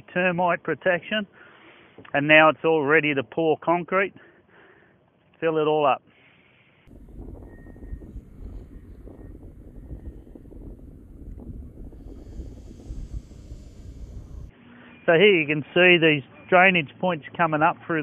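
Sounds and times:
wind rumbling on microphone: 6.9s - 14.5s.

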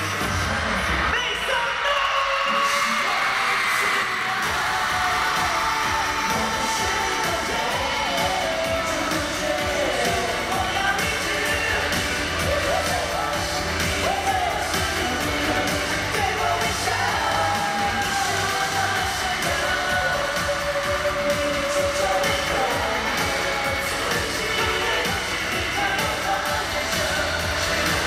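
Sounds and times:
live pop song through sound system: 0.0s - 28.0s.

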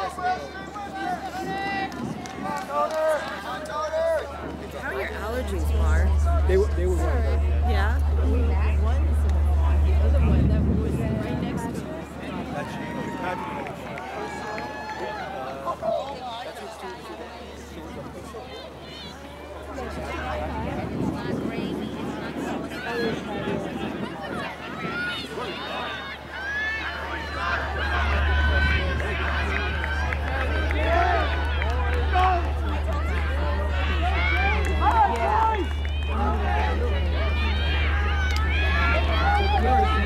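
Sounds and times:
outdoor background noise: 0.0s - 40.0s
people chattering: 0.0s - 40.0s
spectators talking and calling out: 0.0s - 40.0s
steady low rumble: 4.2s - 14.4s, 17.6s - 40.0s.

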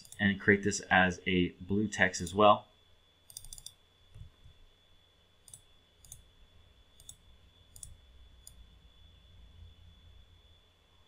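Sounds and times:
computer mouse clicks: 0.0s - 0.2s, 3.3s - 4.3s, 5.4s - 6.3s, 7.0s - 8.6s
faint high-pitched whine: 0.0s - 11.0s.

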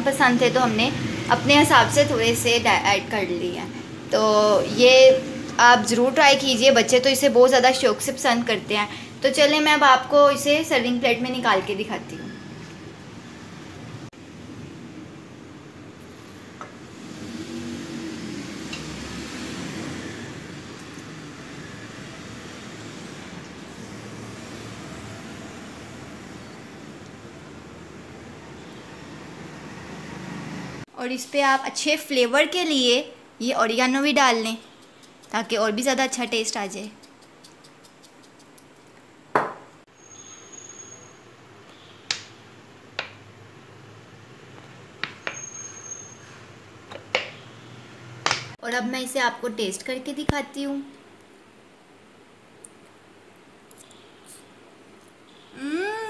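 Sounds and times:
fan whirring: 0.0s - 39.3s.

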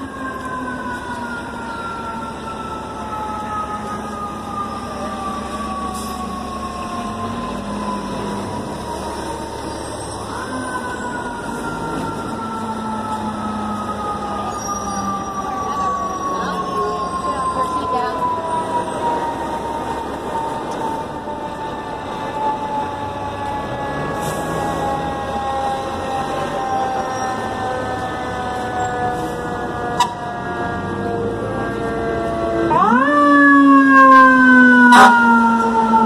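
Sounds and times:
busy street noise: 0.0s - 36.0s
fire engine siren wailing: 0.0s - 36.0s.

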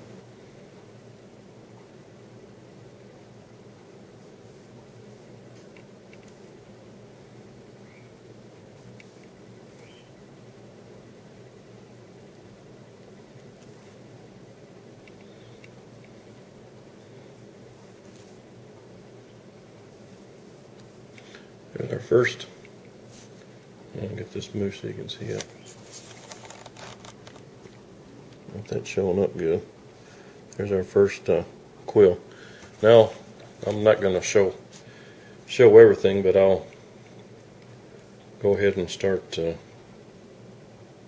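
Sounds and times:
background hum: 0.0s - 41.0s
soft rustling: 12.2s - 14.3s, 15.0s - 38.8s.

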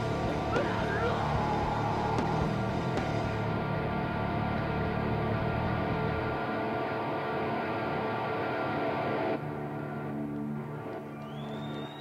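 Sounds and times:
metal band distorted guitars droning: 0.0s - 11.1s.

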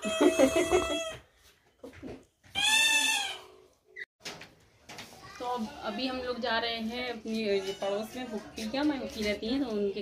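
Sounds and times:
baby squealing: 0.0s - 1.2s.

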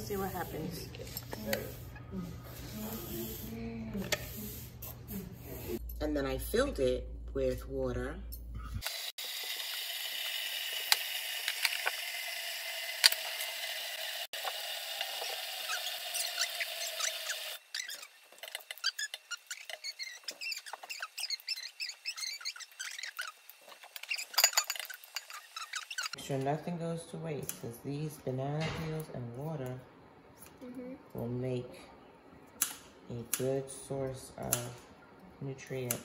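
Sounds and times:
faucet water running into pot: 9.2s - 26.2s.

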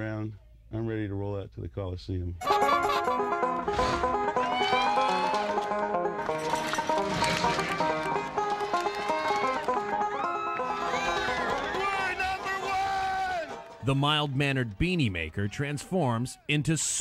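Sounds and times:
banjo picked fast: 2.4s - 14.1s.

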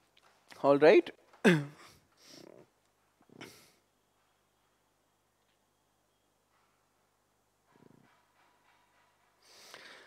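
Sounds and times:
man sniffing: 1.5s - 2.7s
man breathing: 1.8s - 2.7s, 3.3s - 3.9s, 9.4s - 10.0s.

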